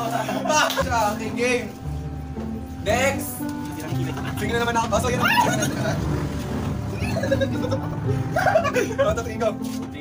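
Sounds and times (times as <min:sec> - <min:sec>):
background music with low notes: 0:00.0 - 0:10.0.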